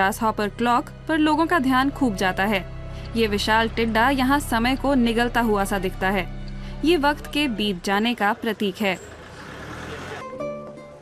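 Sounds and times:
vehicle going by: 8.4s - 10.4s.

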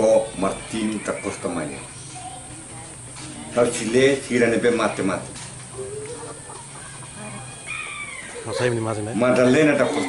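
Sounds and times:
chicken clucking: 5.6s - 10.0s.

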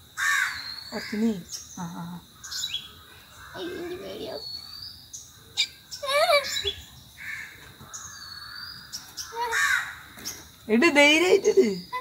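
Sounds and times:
crow cawing: 0.2s - 1.2s, 2.4s - 4.3s, 7.2s - 10.2s.

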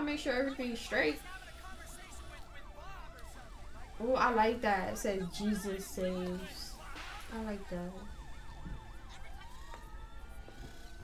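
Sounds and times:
emergency vehicle siren: 0.0s - 11.0s.

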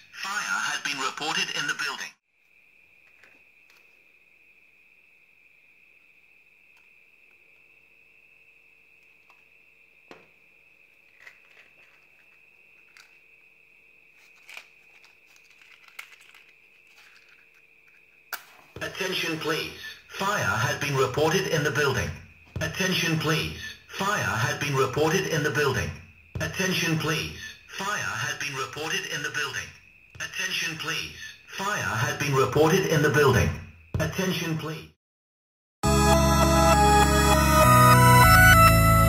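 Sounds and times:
soft clicks and handling rustles: 14.2s - 18.0s.

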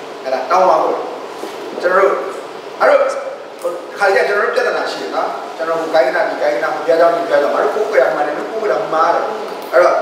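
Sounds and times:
man speaking: 0.2s - 10.0s.

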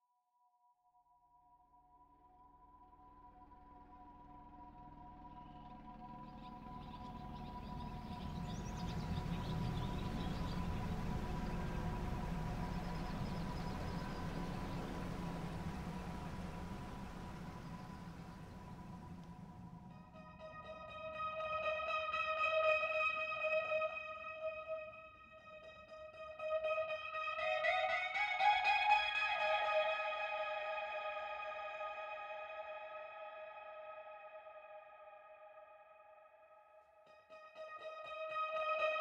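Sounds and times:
noise wash and low rumble: 6.8s - 20.8s.

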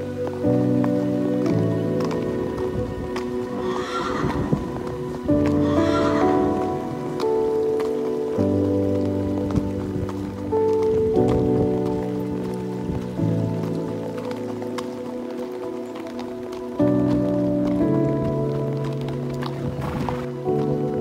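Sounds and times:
sustained chords music: 0.0s - 21.0s
horse whinnying: 3.6s - 4.9s, 5.5s - 6.9s.

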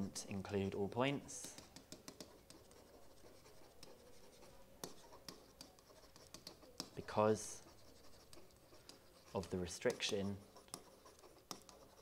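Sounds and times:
stylus scratching on screen: 0.4s - 12.0s.

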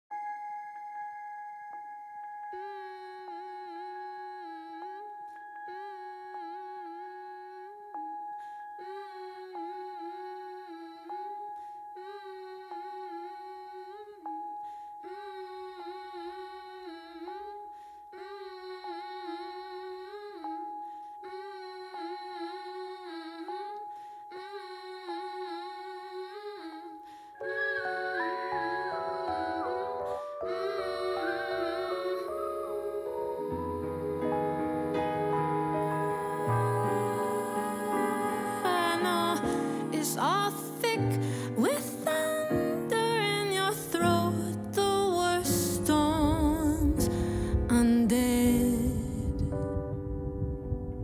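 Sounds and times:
music: 0.1s - 51.0s
person humming: 12.0s - 51.0s.

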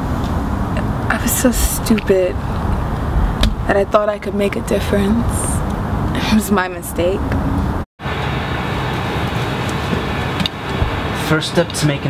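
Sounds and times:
low rumble: 0.0s - 10.2s.

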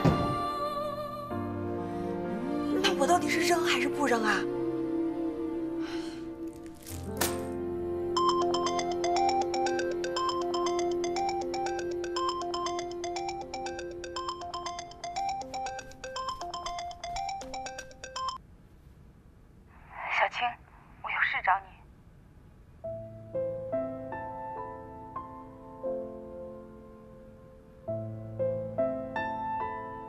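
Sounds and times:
phone ringtone melody: 8.1s - 18.4s.

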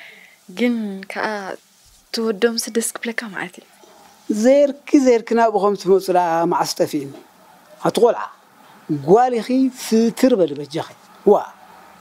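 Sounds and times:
woman talking: 0.5s - 3.8s.

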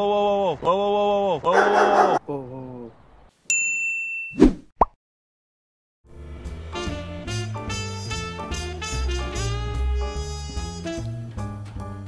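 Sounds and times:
bright bell-like ding: 3.5s - 4.4s.

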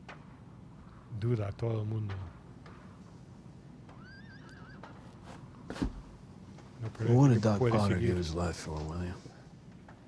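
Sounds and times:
horse whinnying: 3.9s - 5.2s.

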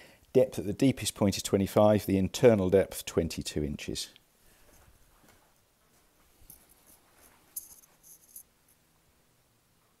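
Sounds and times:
faint rustles: 4.4s - 8.8s.

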